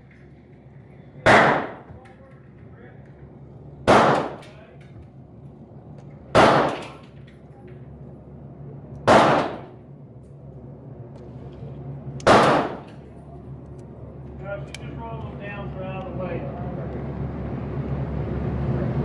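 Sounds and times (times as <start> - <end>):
gunshots with short echo: 1.2 - 1.9, 3.9 - 4.4, 6.3 - 7.0, 9.1 - 9.7, 12.2 - 12.9.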